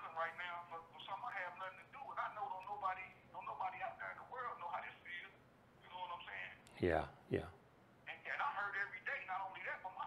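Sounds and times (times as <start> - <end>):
person talking over telephone: 8.1 - 10.0.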